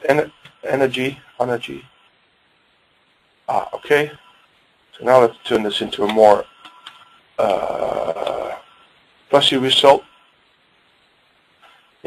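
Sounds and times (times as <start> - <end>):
man saying uhh: 7.4 - 8.6.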